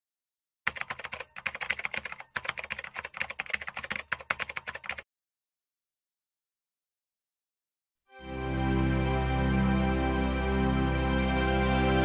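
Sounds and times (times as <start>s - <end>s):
typing on computer keyboard: 0.7s - 5.0s.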